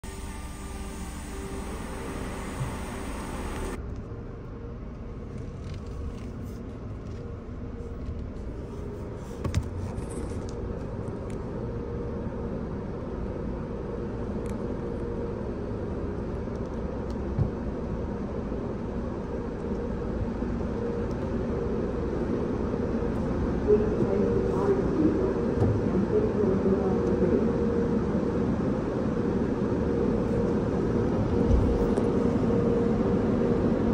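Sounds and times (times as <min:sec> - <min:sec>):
car engine idling: 0:00.0 - 0:03.8.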